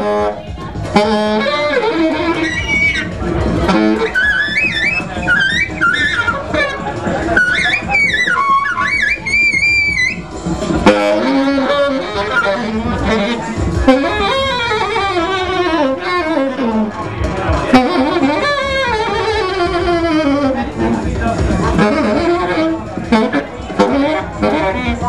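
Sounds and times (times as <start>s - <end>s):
overlapping pitched sounds: 0.0s - 25.0s
saxophone improvising: 0.0s - 25.0s.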